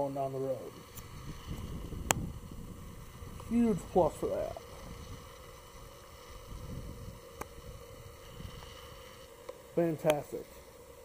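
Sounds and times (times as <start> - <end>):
faint steady hum: 0.0 - 11.0
wind rumble on microphone: 0.7 - 9.0
sharp click: 9.5 - 10.2.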